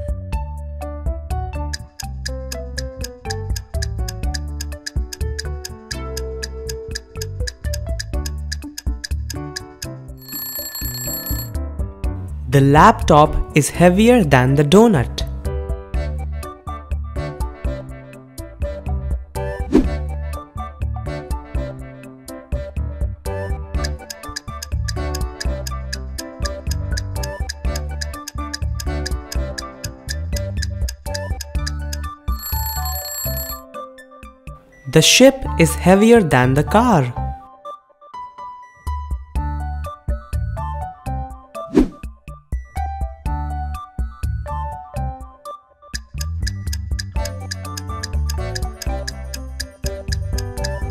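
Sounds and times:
light background music: 0:00.0 - 0:50.9
alarm clock ringing: 0:10.2 - 0:11.6, 0:32.3 - 0:33.6.

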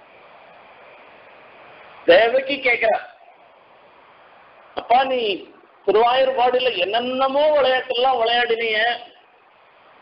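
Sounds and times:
faint background hiss: 0:00.0 - 0:10.0.

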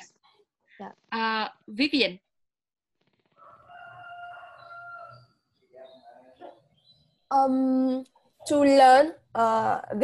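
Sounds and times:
rooster crowing: 0:03.4 - 0:05.4.

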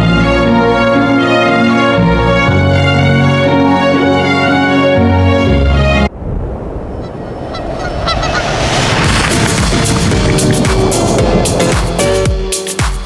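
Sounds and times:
rough wash of noise: 0:06.1 - 0:12.5
beat-driven music: 0:09.1 - 0:13.0.

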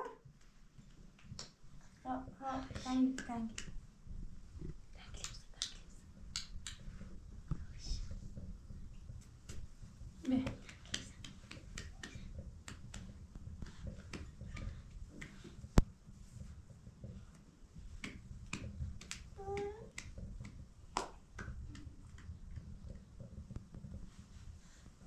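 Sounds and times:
soft voices: 0:02.0 - 0:03.7, 0:10.2 - 0:13.0, 0:19.0 - 0:20.6
hand clap: 0:02.8 - 0:03.8, 0:05.2 - 0:07.1, 0:10.2 - 0:15.8, 0:18.0 - 0:22.3
small taps and clicks: 0:05.0 - 0:24.4.

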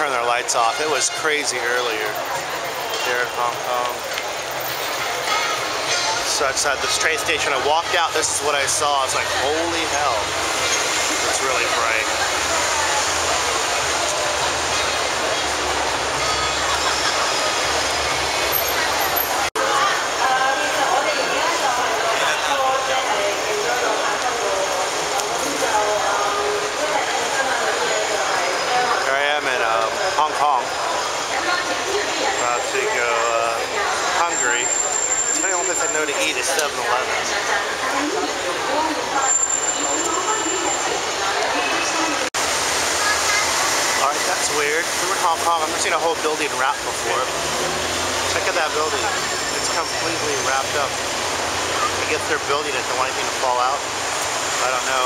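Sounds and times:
many voices: 0:00.0 - 0:55.0
passers-by talking: 0:00.0 - 0:55.0
traffic noise: 0:00.0 - 0:55.0.

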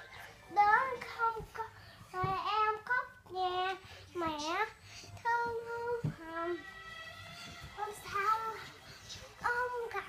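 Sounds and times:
young child singing: 0:00.0 - 0:10.0.

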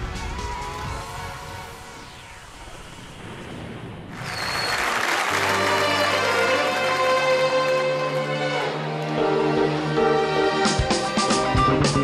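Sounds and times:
television theme music: 0:00.0 - 0:02.4, 0:04.6 - 0:12.0
audience cheering and applause: 0:04.2 - 0:08.0.

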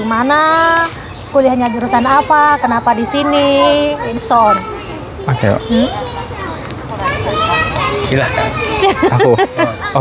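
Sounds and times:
people talking over each other: 0:00.0 - 0:10.0
people laughing: 0:08.6 - 0:10.0.

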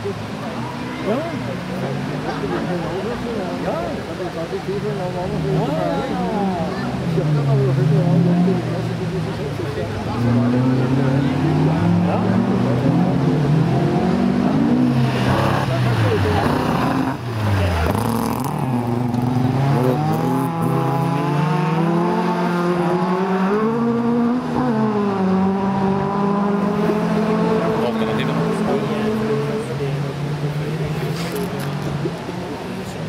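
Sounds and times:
race car engines revving: 0:00.0 - 0:33.0.

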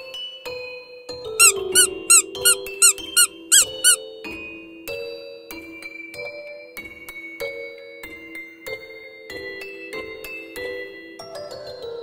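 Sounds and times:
quick high squeaks: 0:01.4 - 0:04.0.

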